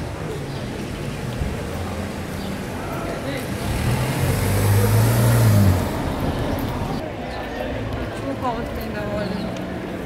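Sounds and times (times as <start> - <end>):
car driving past: 3.5 - 7.0.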